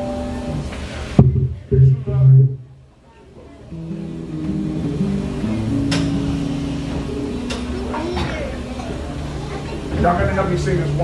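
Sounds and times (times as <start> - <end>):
held instrumental chords: 0.0 - 3.0, 3.6 - 11.0.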